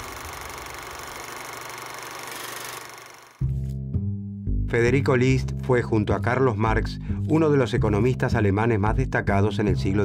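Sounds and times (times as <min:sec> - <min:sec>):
film projector whirring: 0:00.0 - 0:03.4.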